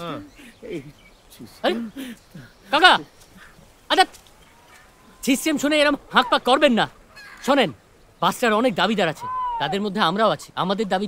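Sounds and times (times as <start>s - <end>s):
man's quavering cry: 9.2s - 9.9s.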